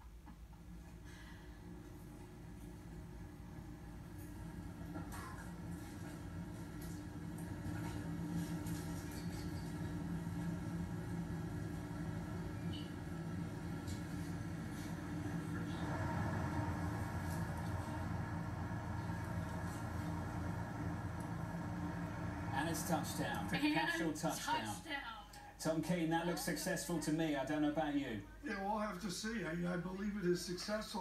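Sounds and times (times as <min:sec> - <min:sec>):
low rumbling drone: 0:02.7 - 0:23.6.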